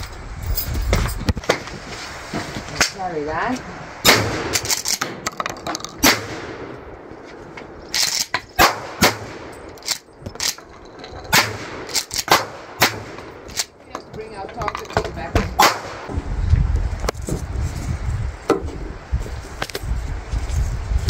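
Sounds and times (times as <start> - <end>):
shotgun shots with echo: 4.0 - 5.2, 6.0 - 6.7, 8.6 - 9.5, 11.3 - 13.4, 15.6 - 16.1.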